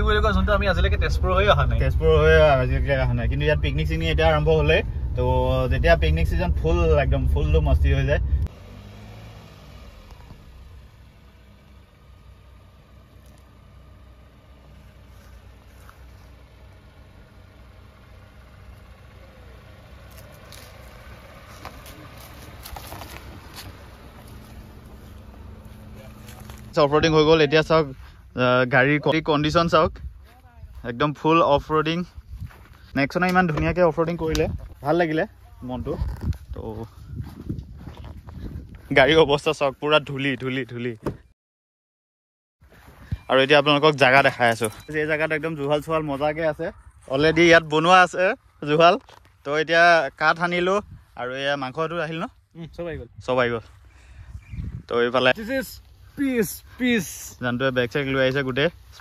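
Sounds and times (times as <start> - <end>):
car engine humming: 0.0 - 41.3, 42.7 - 59.0.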